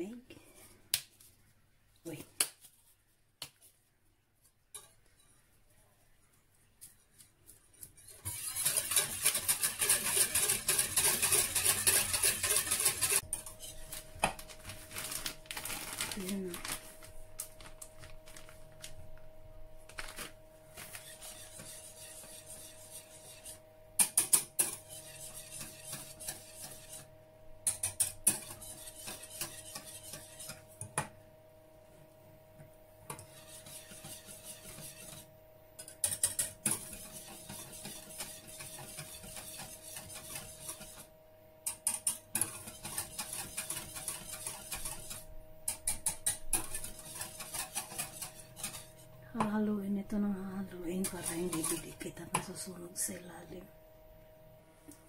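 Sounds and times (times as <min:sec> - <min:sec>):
faint steady hum: 0:00.0 - 0:55.0
whisk scraping a saucepan: 0:04.7 - 0:05.5, 0:06.8 - 0:14.1, 0:20.8 - 0:30.7, 0:33.1 - 0:49.5, 0:50.7 - 0:52.6.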